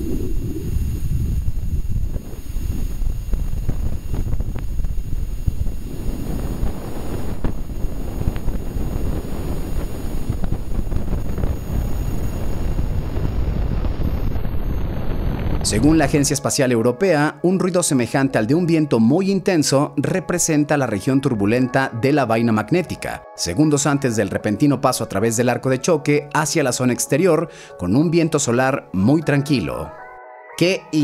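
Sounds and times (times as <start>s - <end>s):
steady wind-like rushing noise: 0.0s - 21.7s.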